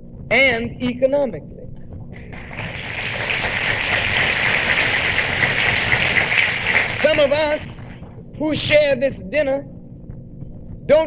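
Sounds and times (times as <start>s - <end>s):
audience applauding: 2.2s - 8.0s
person speaking: 6.8s - 9.5s.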